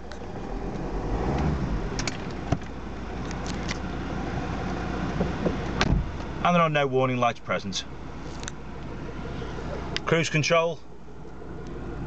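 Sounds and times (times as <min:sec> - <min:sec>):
diesel engine idling: 0:01.7 - 0:12.0.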